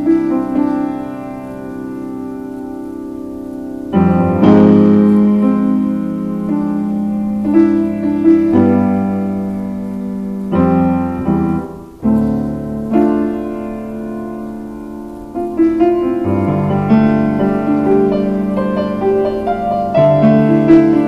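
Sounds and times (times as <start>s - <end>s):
grand piano playing: 0.0s - 21.0s.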